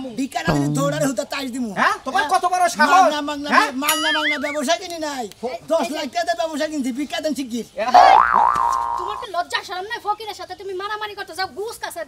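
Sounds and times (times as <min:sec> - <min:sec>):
cartoon boing: 0:00.5 - 0:01.1, 0:03.9 - 0:04.6, 0:08.0 - 0:09.3.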